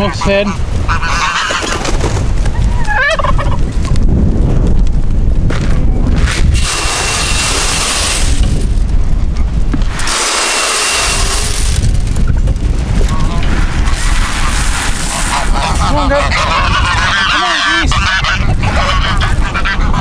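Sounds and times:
turkey gobbling: 0:00.0 - 0:03.7, 0:13.8 - 0:20.0
wind buffeting microphone: 0:00.0 - 0:20.0
hissing rushes: 0:06.3 - 0:09.0, 0:09.8 - 0:15.8.

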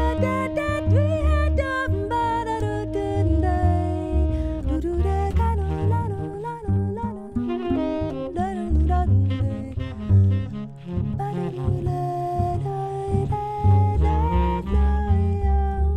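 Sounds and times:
plucked double bass: 0:00.0 - 0:15.9
tenor saxophone melody: 0:00.0 - 0:15.9.

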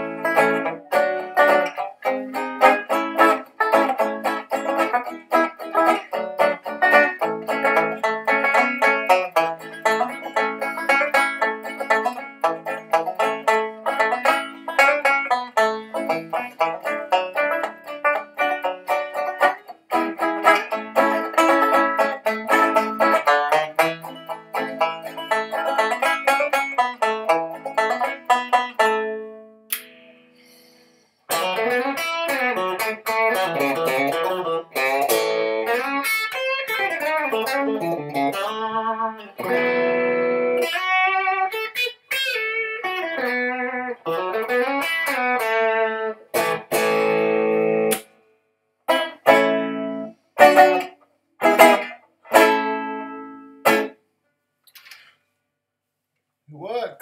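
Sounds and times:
electric banjo picked rapidly: 0:00.0 - 0:29.3, 0:31.3 - 0:48.0, 0:48.9 - 0:54.0
electric guitar with pitch bends: 0:00.0 - 0:30.5, 0:31.3 - 0:48.2, 0:48.9 - 0:54.0.

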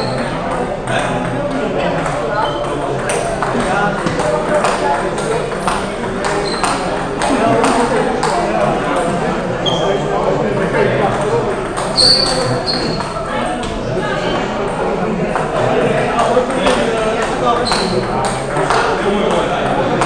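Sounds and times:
table tennis balls clicking: 0:00.0 - 0:09.1, 0:11.1 - 0:13.3
chatter of many voices: 0:00.0 - 0:20.0.

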